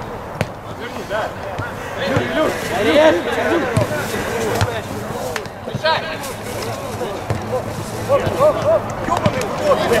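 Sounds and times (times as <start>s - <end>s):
players shouting: 0.4s - 10.0s.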